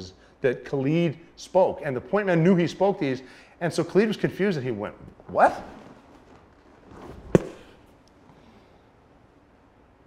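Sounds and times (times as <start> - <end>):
sharp crack with ringing tail: 7.4 - 7.8.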